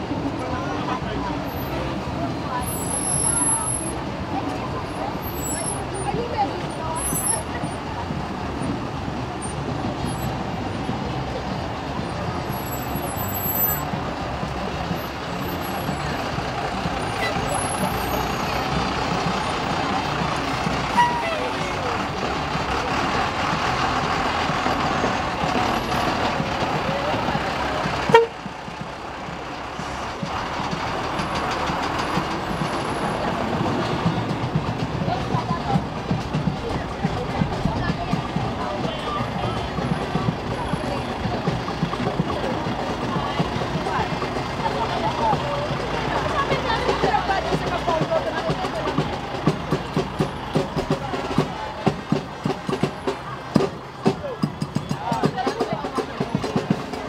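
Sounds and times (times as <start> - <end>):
heavy trucks running slowly: 0.0 - 57.0
people's voices: 0.0 - 57.0.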